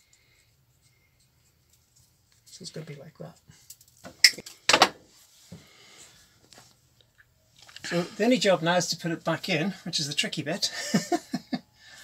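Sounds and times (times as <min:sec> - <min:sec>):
man talking: 0:02.5 - 0:03.4, 0:07.9 - 0:11.0.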